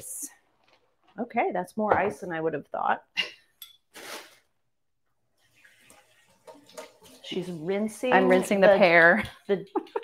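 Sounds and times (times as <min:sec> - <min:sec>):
tap water splashing: 0:05.4 - 0:07.8.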